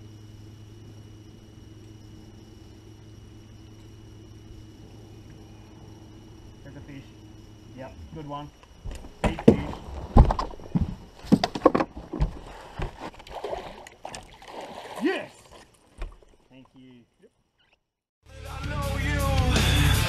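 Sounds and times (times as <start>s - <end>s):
water splashing: 12.2s - 16.9s.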